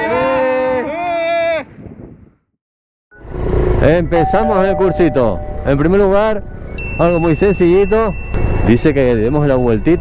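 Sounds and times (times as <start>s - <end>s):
wind: 0.0s - 10.0s.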